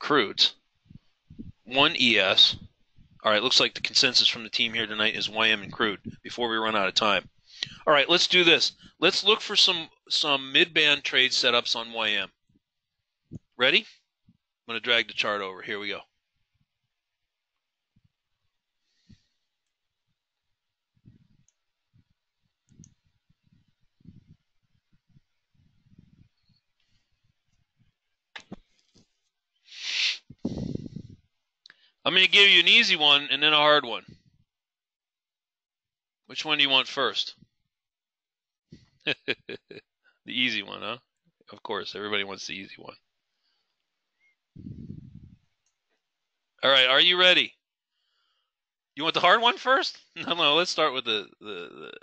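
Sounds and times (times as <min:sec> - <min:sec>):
muffled closed-mouth hum: 0:00.0 - 0:07.9, 0:21.0 - 0:22.1, 0:22.7 - 0:26.6, 0:30.2 - 0:31.3, 0:44.6 - 0:45.4
soft low thumps: 0:00.9 - 0:01.7, 0:22.7 - 0:26.3, 0:30.3 - 0:31.2, 0:44.6 - 0:45.4.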